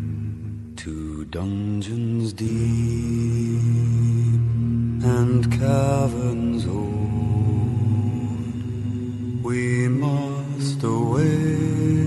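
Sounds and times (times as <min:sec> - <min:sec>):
sung phrases: 0:00.0 - 0:12.0
men humming low drone: 0:02.5 - 0:12.0.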